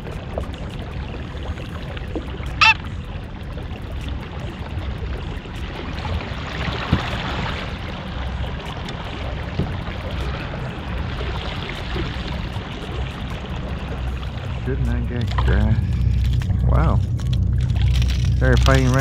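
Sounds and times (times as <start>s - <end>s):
paddle strokes splashing: 0.0s - 16.4s
steady low rumble: 0.0s - 19.0s
paddle knocking hull: 6.8s - 7.6s, 8.8s - 10.4s.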